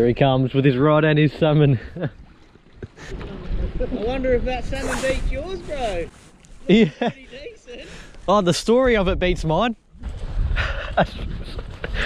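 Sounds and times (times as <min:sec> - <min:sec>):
wind rumbling on microphone: 0:02.9 - 0:06.1, 0:08.5 - 0:12.0
man speaking: 0:03.7 - 0:06.1, 0:06.7 - 0:09.8
man laughing breathily: 0:06.7 - 0:07.2, 0:10.5 - 0:12.0.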